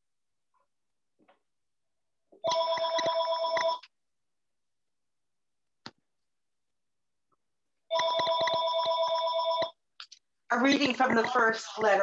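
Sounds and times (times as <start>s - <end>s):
telephone ringing: 2.4s - 3.9s, 7.9s - 9.8s.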